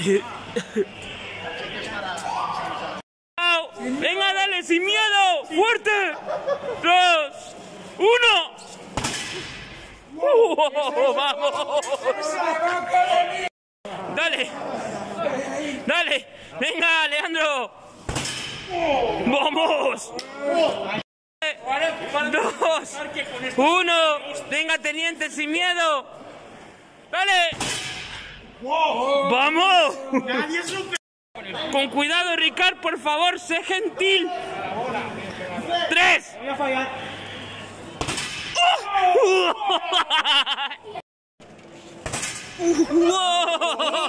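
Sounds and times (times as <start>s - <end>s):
person cheering shout: 38.6s - 40.0s.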